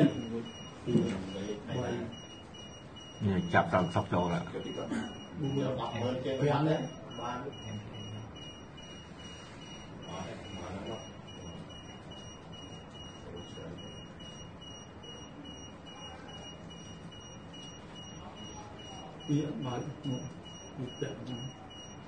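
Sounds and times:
electronic alarm beeping: 0.0s - 22.0s.

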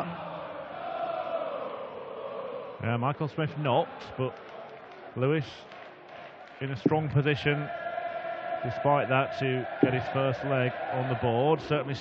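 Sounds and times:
crowd chanting: 0.0s - 2.8s, 6.2s - 12.0s.

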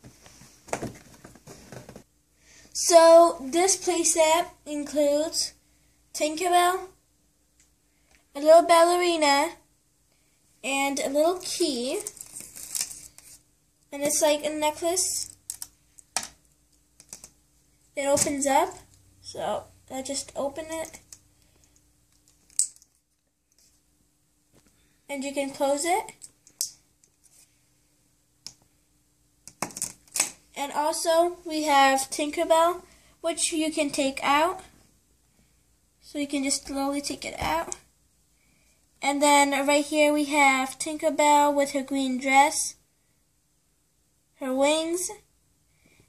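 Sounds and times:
soft rustles: 0.0s - 2.1s, 27.1s - 27.8s.

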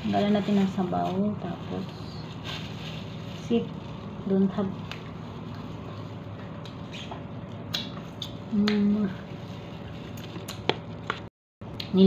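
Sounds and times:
plastic bag crackling: 0.0s - 6.3s
steady background hum: 0.0s - 12.0s.

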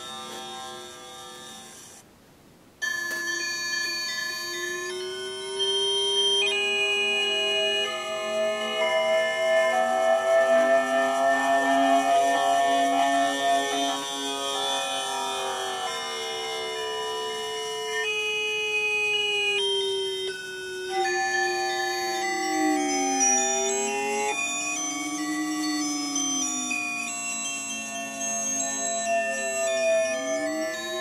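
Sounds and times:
gliding electronic pitch lines: 3.9s - 31.0s
sustained electronic tones: 4.0s - 31.0s.

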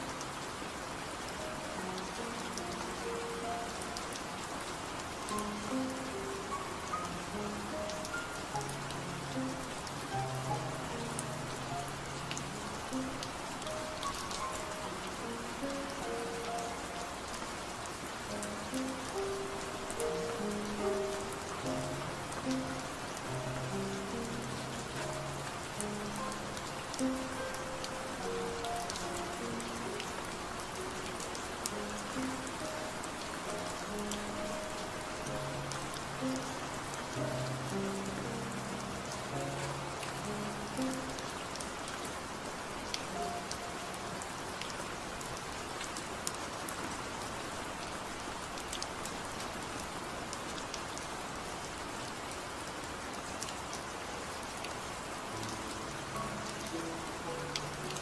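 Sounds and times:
soft slow melody: 0.0s - 58.0s
steady rain: 0.0s - 58.0s.

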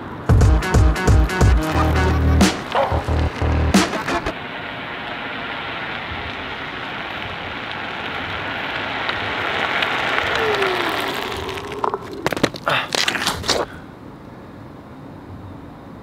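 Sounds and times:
rushing tyre noise: 0.0s - 14.7s.

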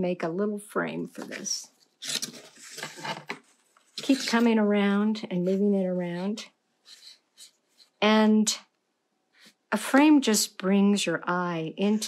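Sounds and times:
paper rustling on tabletop: 1.2s - 4.6s.

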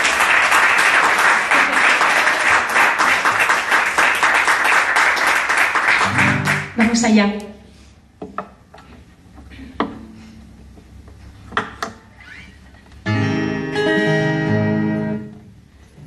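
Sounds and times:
acoustic guitar plucked notes: 13.0s - 15.6s
strummed guitar chords: 13.1s - 15.5s.

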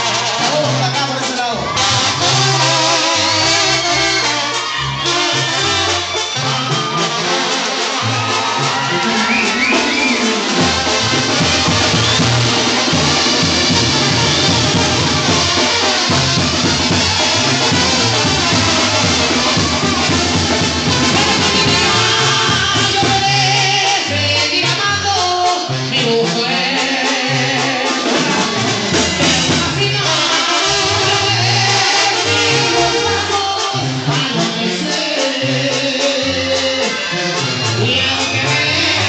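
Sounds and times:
crowd: 0.0s - 39.0s
live band music: 0.0s - 39.0s
person singing: 21.0s - 39.0s.

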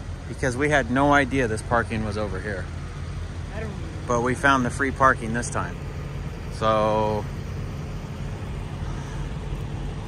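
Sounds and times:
semi-truck engines idling: 0.0s - 10.0s.

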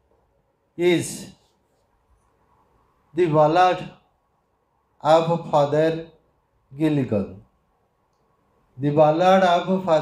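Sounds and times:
man speaking: 0.8s - 1.4s, 3.1s - 4.0s, 5.0s - 7.5s, 8.8s - 10.0s.

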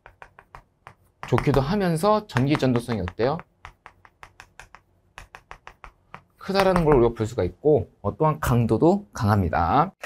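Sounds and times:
chalk tapping on chalkboard: 0.0s - 7.2s.

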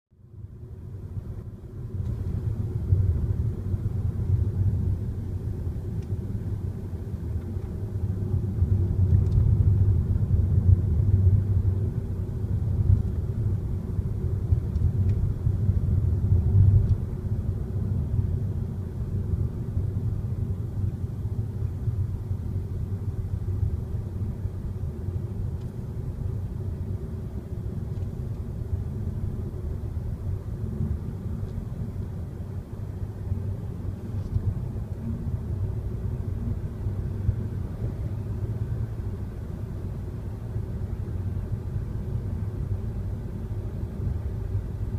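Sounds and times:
car driving heard from inside: 0.2s - 44.9s.

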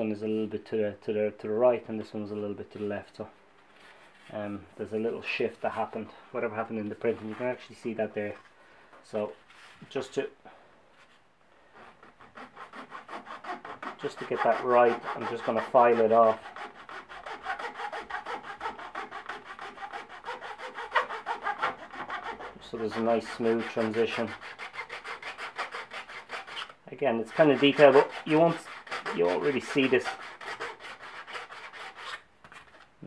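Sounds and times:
hand file scraping plastic: 11.8s - 32.9s.

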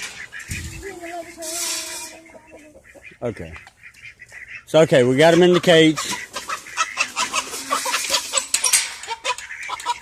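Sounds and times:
wire cage clattering: 0.0s - 2.2s, 5.9s - 10.0s
chickens clucking and squawking: 0.0s - 10.0s
geese honking: 0.0s - 10.0s.

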